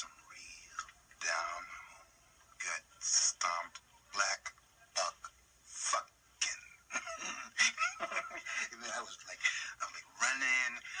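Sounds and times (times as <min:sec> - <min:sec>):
man talking animatedly: 0:08.5 - 0:11.0.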